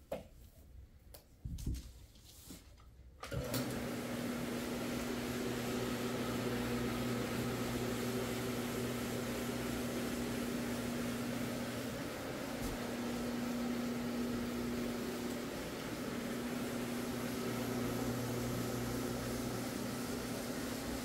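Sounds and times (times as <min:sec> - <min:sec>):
floor machine motor humming: 0:03.2 - 0:21.0.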